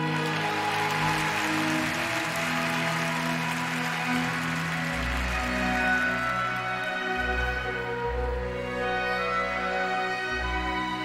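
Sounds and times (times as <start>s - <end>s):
audience applause: 0.0s - 8.0s
orchestral music: 0.0s - 11.0s.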